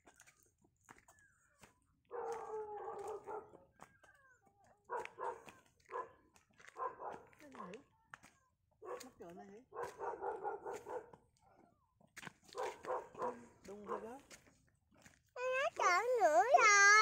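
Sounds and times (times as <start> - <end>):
dog barking: 2.1 - 3.7, 4.8 - 7.8, 8.8 - 11.2, 12.5 - 14.2
dog drawn-out call: 2.2 - 3.6, 12.6 - 13.5.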